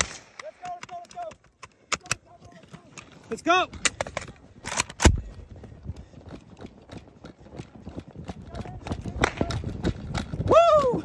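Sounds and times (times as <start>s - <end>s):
camera jostling: 0.6s - 5.4s
running footsteps through dry grass: 1.3s - 11.0s.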